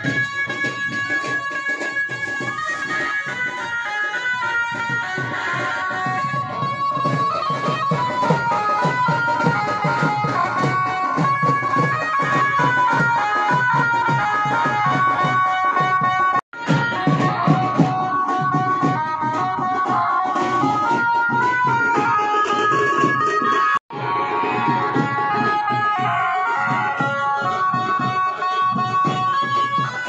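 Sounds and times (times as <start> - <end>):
festival music: 0.0 - 30.0
steady drum beat: 0.0 - 30.0.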